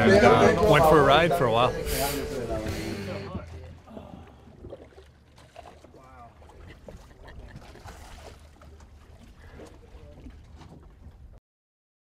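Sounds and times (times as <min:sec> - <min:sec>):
low rumble: 0:00.0 - 0:04.8
wind and water on sea: 0:00.0 - 0:11.4.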